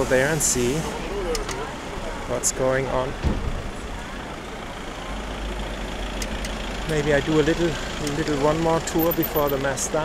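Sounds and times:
brief thump: 3.2 - 3.7.

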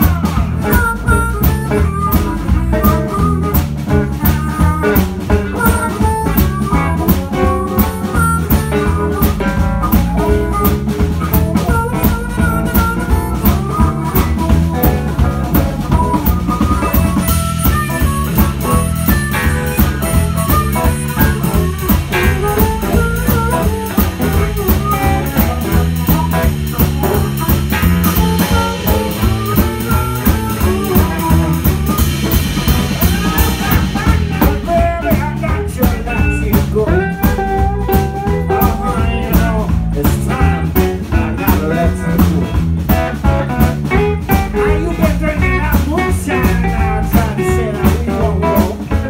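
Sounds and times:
drum kit beat: 0.0 - 49.0
electric bass: 0.0 - 49.0
guitar: 0.0 - 49.0
harmonica: 0.0 - 49.0.

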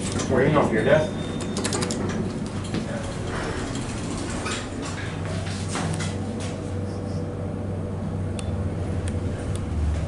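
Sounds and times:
elevator low hum: 0.0 - 10.0
elevator door mechanism clicks: 1.3 - 2.7.

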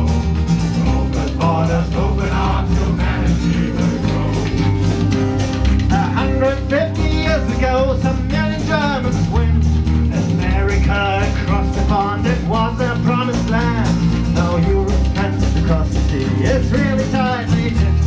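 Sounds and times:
choir singing sea shanty: 0.0 - 6.7
guitar accompaniment: 0.0 - 18.0
steady beat: 0.0 - 18.0.

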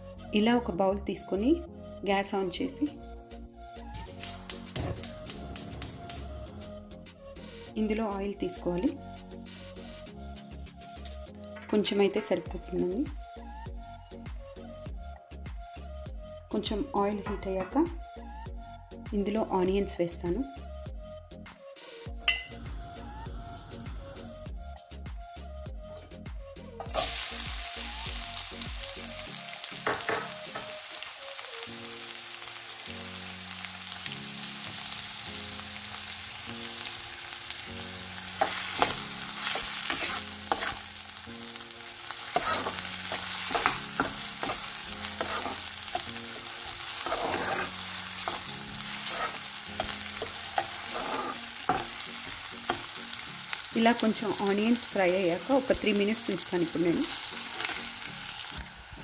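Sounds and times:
soft background music: 0.0 - 59.0
onions sizzling in hot oil: 26.8 - 59.0
steel spoon scraping pan: 38.3 - 40.9, 42.1 - 52.1.

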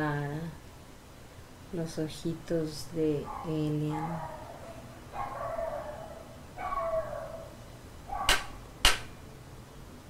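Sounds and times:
dog whining: 3.3 - 8.5
dog yipping: 3.3 - 8.6.

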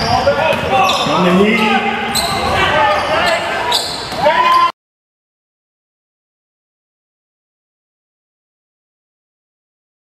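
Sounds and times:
players calling out: 0.0 - 4.7.

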